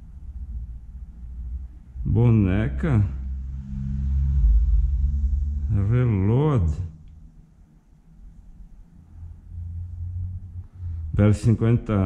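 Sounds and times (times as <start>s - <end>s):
deep rumble: 0.0s - 12.0s
low mechanical hum: 0.0s - 12.0s.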